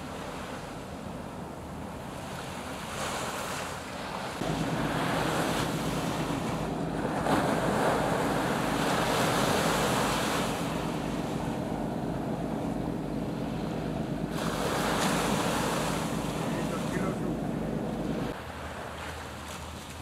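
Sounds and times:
sea waves: 0:00.0 - 0:20.0
wind rushing over microphone: 0:03.2 - 0:18.4.

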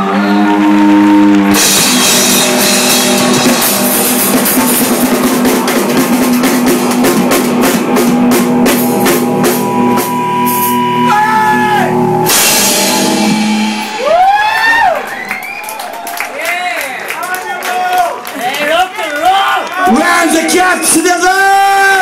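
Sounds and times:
electric guitar: 0:00.0 - 0:16.0
high sliding guitar tones: 0:00.0 - 0:16.0
drum kit: 0:00.0 - 0:16.6.

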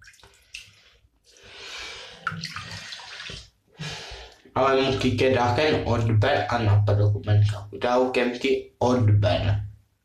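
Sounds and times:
water rushing in a bathtub: 0:01.8 - 0:04.0, 0:04.7 - 0:05.2.

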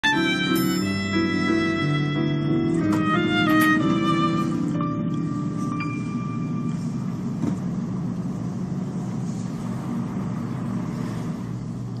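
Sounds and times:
low rumbling background ambience: 0:00.3 - 0:12.0.

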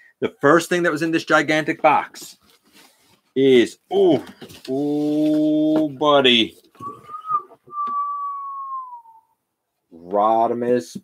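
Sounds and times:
person whistling long note: 0:06.8 - 0:09.4.

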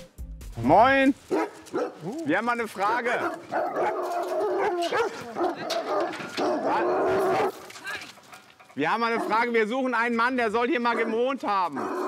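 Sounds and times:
dog barking and howling: 0:01.3 - 0:07.6, 0:08.9 - 0:09.5, 0:10.7 - 0:12.0.

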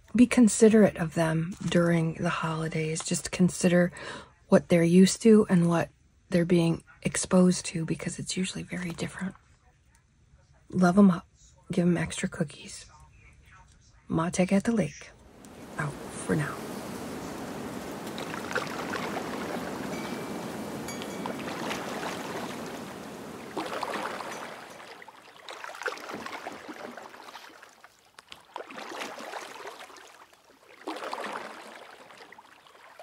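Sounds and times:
water washing and lapping: 0:15.2 - 0:33.0.

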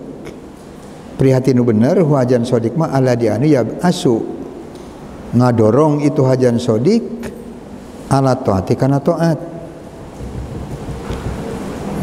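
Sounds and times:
steady rushing noise: 0:09.1 - 0:12.0
low rumble: 0:09.9 - 0:12.0.

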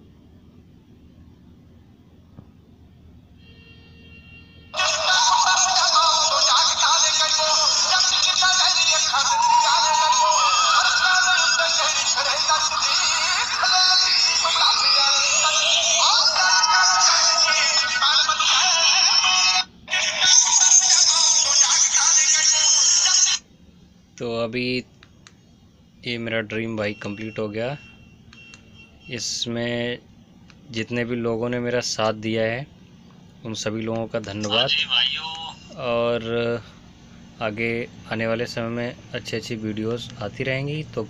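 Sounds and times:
song on small loudspeaker: 0:04.8 - 0:23.4.

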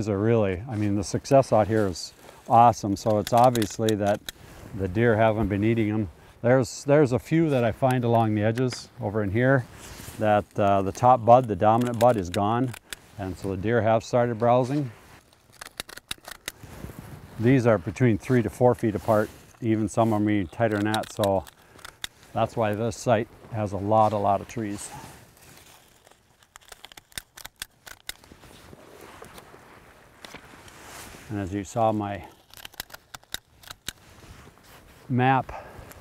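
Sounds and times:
hand stapler clicking: 0:20.8 - 0:22.2.

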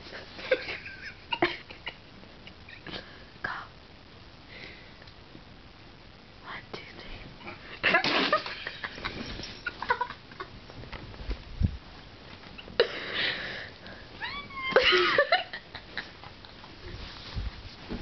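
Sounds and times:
woman laughing hard: 0:00.4 - 0:02.0, 0:07.8 - 0:10.6, 0:14.2 - 0:16.5.

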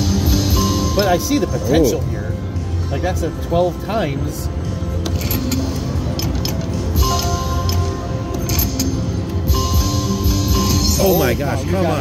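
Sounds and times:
slot machine electronic music: 0:00.0 - 0:02.2.

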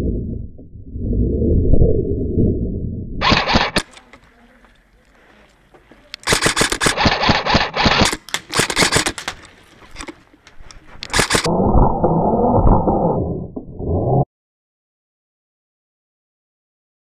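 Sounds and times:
loud muffled rumbling: 0:00.0 - 0:03.8, 0:11.2 - 0:14.2
airsoft gun firing rapid bursts: 0:03.2 - 0:03.9, 0:06.2 - 0:09.4, 0:11.1 - 0:11.5.

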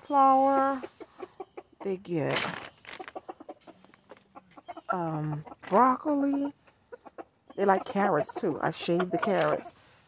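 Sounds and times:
chickens clucking softly: 0:00.2 - 0:02.2, 0:02.9 - 0:09.8.

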